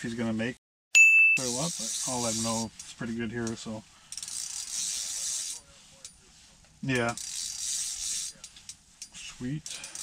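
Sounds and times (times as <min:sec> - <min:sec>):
fishing reel cranking: 0:01.4 - 0:02.6, 0:04.1 - 0:05.6, 0:07.0 - 0:08.5, 0:09.6 - 0:10.0.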